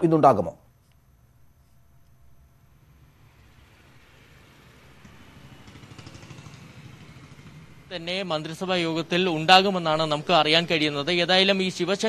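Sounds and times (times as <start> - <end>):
faint street traffic rumble: 2.1 - 12.0.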